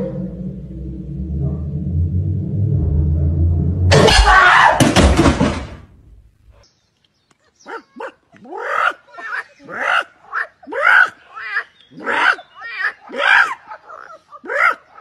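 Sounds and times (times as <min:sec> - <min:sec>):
low steady hum: 0:00.0 - 0:04.3
metal pot crash: 0:03.9 - 0:05.8.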